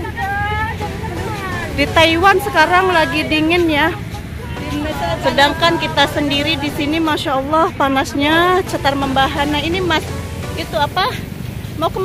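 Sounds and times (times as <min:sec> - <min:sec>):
indistinct voices: 0:00.0 - 0:12.0
street traffic rumble: 0:00.0 - 0:12.0.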